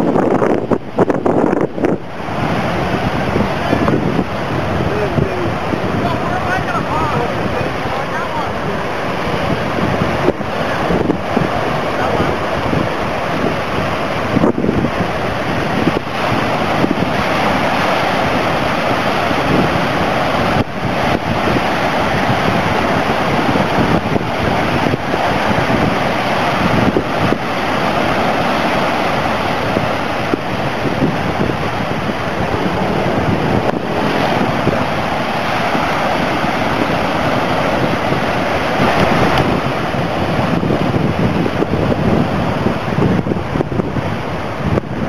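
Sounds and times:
surf waves breaking on shore: 0.0s - 45.0s
wind buffeting microphone: 0.0s - 45.0s.

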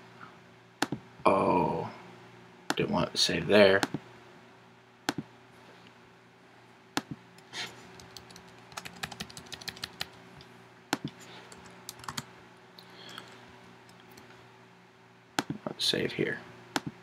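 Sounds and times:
faint steady hum: 0.0s - 17.0s
computer keyboard typing: 7.9s - 10.2s, 11.0s - 12.3s.

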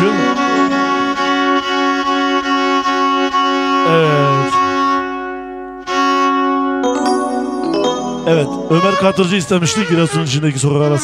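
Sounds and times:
bowed fiddle string drone: 0.0s - 2.8s
short repeated bowed notes: 0.0s - 10.1s.

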